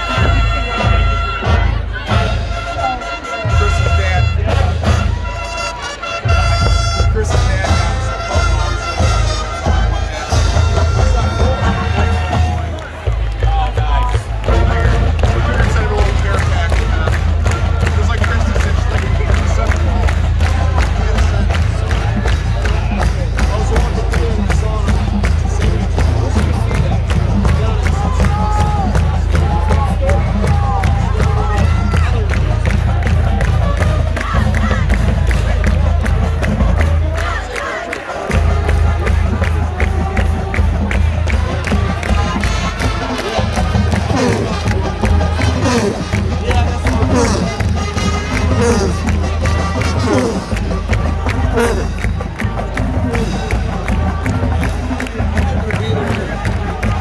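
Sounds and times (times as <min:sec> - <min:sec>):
crowd noise: 0:00.0 - 0:57.0
marching band playing: 0:00.0 - 0:57.0.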